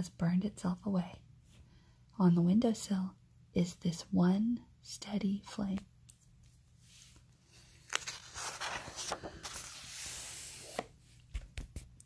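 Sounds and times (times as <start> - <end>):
paper rustling and sliding: 6.8 - 11.9.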